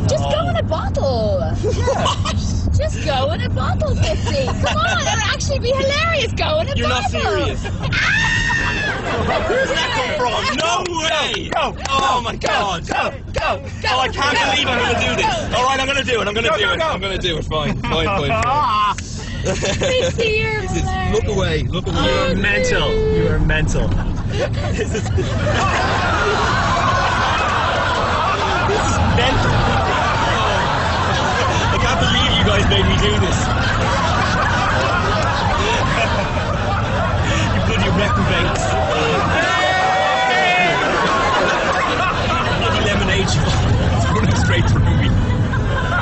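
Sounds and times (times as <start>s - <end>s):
road noise inside moving car: 0.0s - 46.0s
people laughing: 1.6s - 46.0s
muffled voices: 9.0s - 46.0s.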